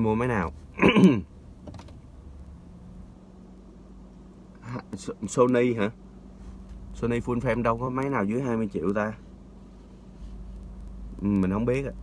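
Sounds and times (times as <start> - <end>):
quiet steady hum: 0.0 - 12.0.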